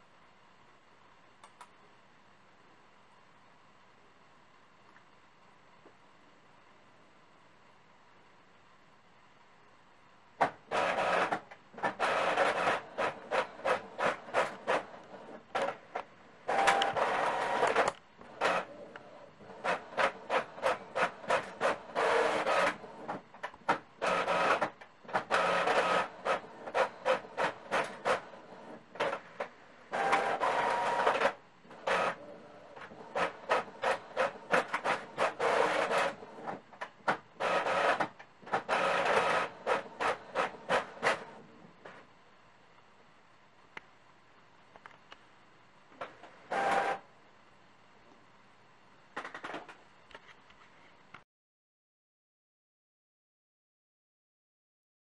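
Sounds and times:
printer paper feed running: 10.4s - 42.0s, 46.0s - 47.1s
print head pulses: 10.7s - 15.8s, 16.4s - 41.5s.

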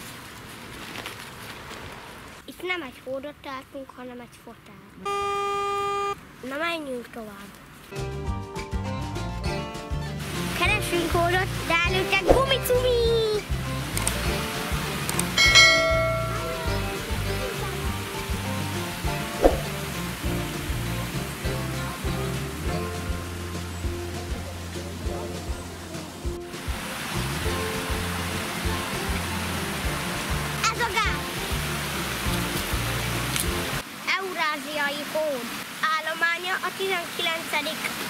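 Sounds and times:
background music: 7.9s - 33.8s
bright bell ding: 15.4s - 16.8s
water pouring over a dam: 26.0s - 38.0s.

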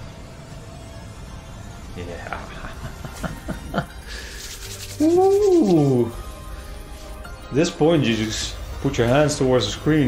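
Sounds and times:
shimmering slot machine jingle: 5.8s - 10.0s.

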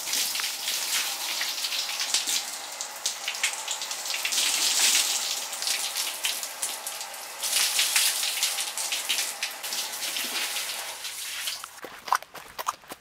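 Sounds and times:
hose water splashing: 0.0s - 11.8s.

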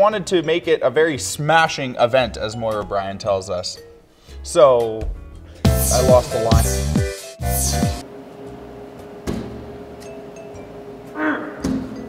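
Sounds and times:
vending machine humming: 7.4s - 12.0s.

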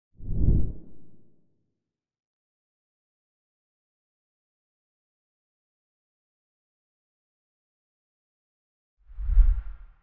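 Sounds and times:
low whoosh sound effect: 0.2s - 1.0s, 9.1s - 10.0s.

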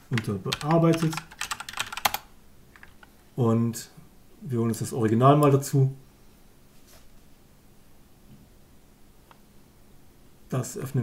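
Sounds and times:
computer keyboard typing: 0.1s - 3.1s.

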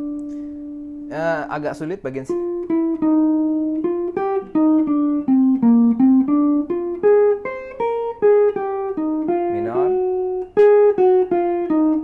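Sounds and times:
jazz guitar single-note line: 0.0s - 12.0s.

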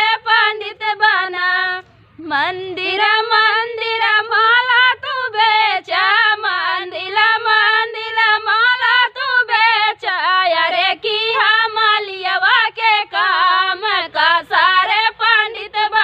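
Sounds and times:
two women singing unaccompanied: 0.0s - 16.0s.

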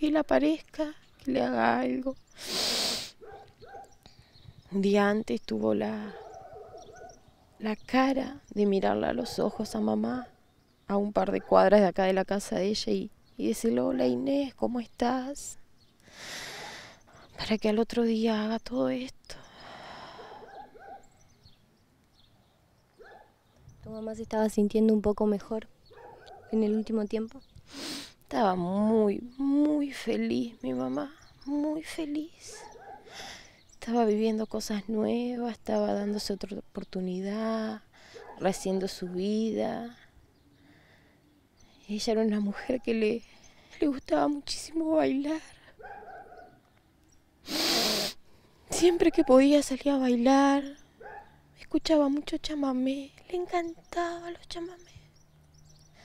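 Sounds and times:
bird calls: 1.9s - 11.8s, 19.4s - 23.9s, 25.6s - 28.0s, 30.1s - 37.0s, 37.9s - 44.3s, 45.6s - 47.4s, 50.5s - 51.5s, 53.4s - 56.0s
sharp intake of breath: 2.4s - 3.2s, 16.1s - 17.0s, 27.7s - 28.2s, 47.4s - 48.4s
high bird chirps: 3.2s - 8.8s.

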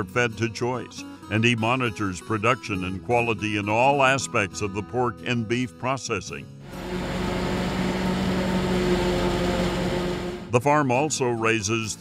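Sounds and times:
forage harvester machine drone: 6.6s - 10.6s.

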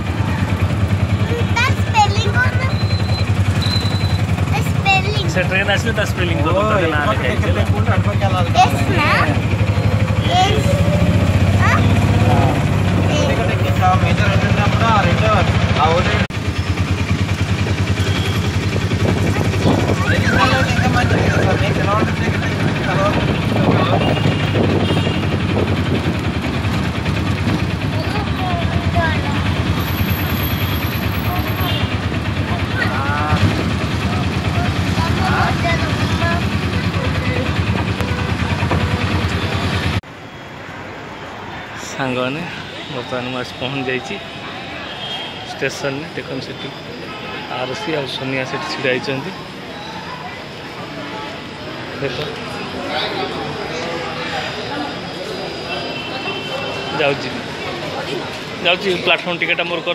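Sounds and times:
auto-rickshaw engine running: 0.0s - 40.2s
voices talking: 0.0s - 40.2s, 41.2s - 59.9s.

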